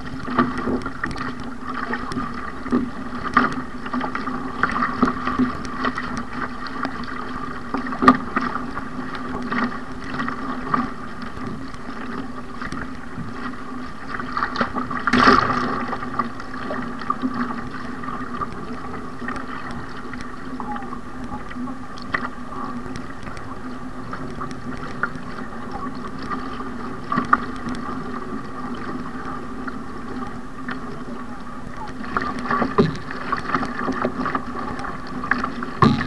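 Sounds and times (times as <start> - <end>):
paddle blade splashing: 0.0 - 36.0
water rushing along a hull: 0.0 - 36.0.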